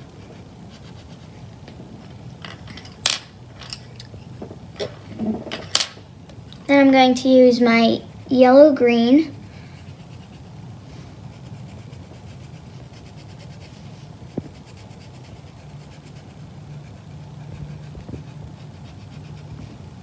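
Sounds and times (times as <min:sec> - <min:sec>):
pencil scratching on paper: 0:00.0 - 0:01.4, 0:09.2 - 0:20.0
low steady hum: 0:00.0 - 0:20.0.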